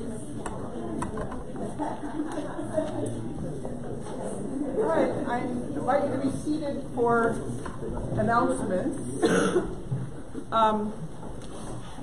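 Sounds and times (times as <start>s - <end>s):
short cough: 9.2s - 9.8s.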